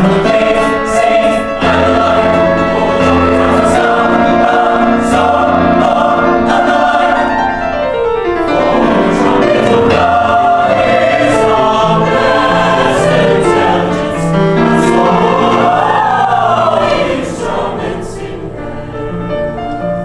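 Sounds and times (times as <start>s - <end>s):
mixed choir singing: 0.0s - 19.6s
grand piano accompaniment: 0.0s - 20.0s.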